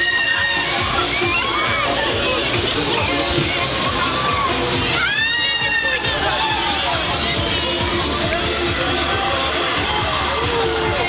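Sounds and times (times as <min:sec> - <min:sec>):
riders screaming: 0:00.0 - 0:02.4, 0:03.9 - 0:07.0.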